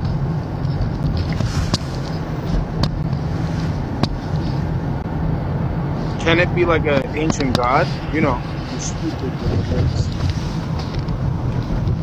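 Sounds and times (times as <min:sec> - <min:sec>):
car engine and tyres rumbling: 0:00.0 - 0:12.0
road hiss: 0:01.3 - 0:11.8.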